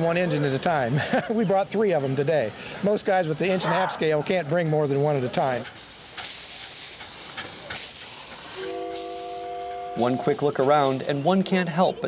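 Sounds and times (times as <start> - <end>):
steam locomotive hissing: 0.0 - 12.0
locomotive exhaust beats: 4.9 - 11.2
steam whistle chord: 8.6 - 10.6.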